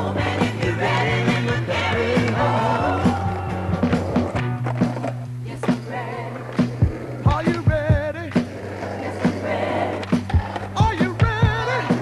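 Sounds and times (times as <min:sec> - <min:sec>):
background music with bass line: 0:00.0 - 0:12.0
skateboard clacking on concrete: 0:06.4 - 0:12.0.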